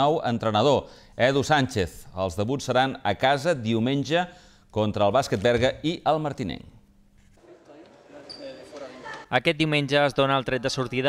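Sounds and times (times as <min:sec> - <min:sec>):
murmur of players' voices: 0:07.4 - 0:11.0
high-pitched shoe squeak: 0:08.2 - 0:08.8.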